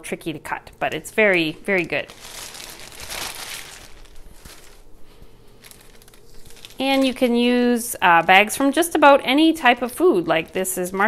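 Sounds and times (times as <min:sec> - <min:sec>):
plastic chip bag crinkling: 0:01.0 - 0:11.0.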